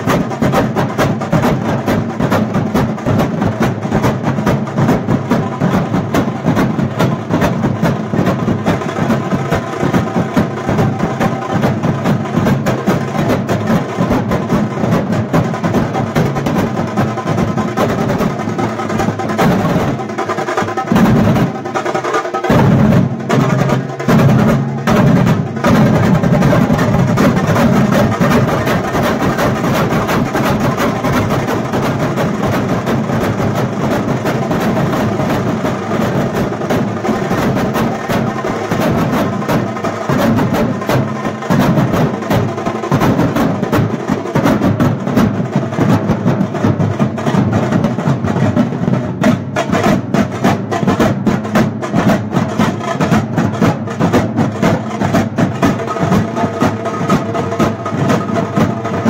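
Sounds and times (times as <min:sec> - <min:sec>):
drum troupe playing fast rhythm: 0:00.0 - 0:59.0.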